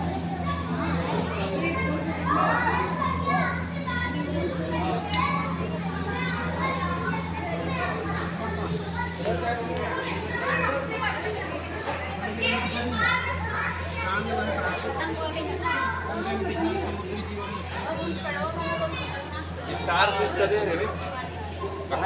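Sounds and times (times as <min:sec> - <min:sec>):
steady low hum: 0:00.0 - 0:19.7
children chattering and calling: 0:00.0 - 0:22.0.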